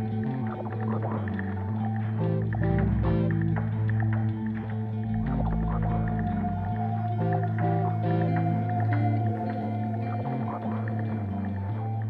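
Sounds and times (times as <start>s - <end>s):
slow sustained tones: 0.0s - 12.0s
steady low drone: 0.0s - 12.0s.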